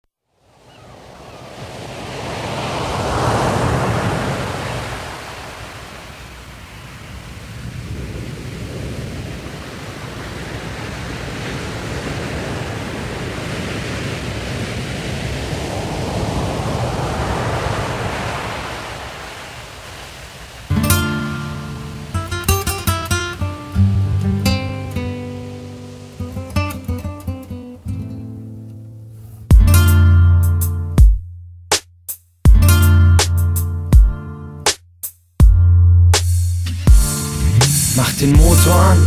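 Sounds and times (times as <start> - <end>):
ocean surf washing in: 0.3 - 28.6, 36.7 - 39.0.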